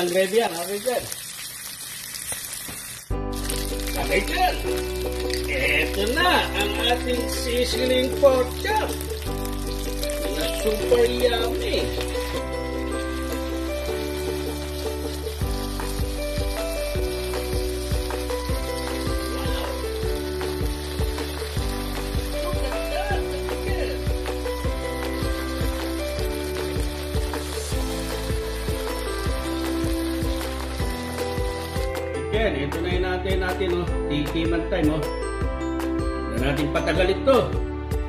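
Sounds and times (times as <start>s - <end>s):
meat sizzling on hot plate: 0.0s - 32.1s
background music with beat: 3.1s - 38.0s.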